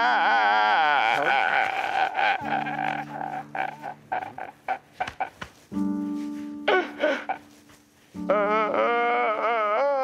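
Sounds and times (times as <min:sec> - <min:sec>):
man sobbing: 0:00.0 - 0:05.4, 0:06.6 - 0:07.6, 0:08.2 - 0:10.0.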